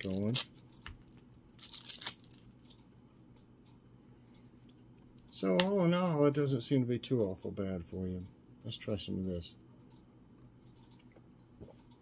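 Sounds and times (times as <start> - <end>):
plastic wrapper crackle: 0.0 - 2.7.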